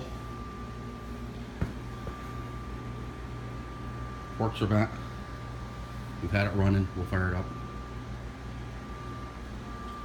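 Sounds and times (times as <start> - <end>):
high steady whine: 0.0 - 10.0
steady background hum: 0.0 - 10.0.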